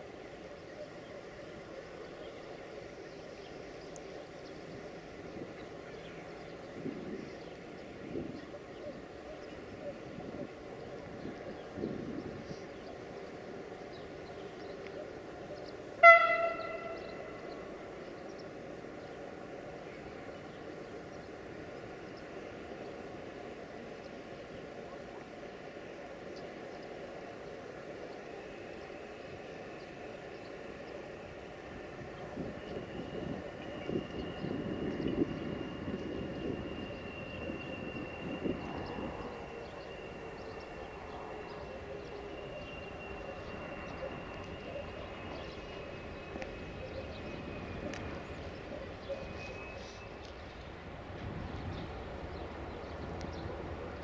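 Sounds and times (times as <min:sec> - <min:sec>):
train rumble: 0:00.0 - 0:54.0
locomotive horn blast: 0:16.0 - 0:17.7.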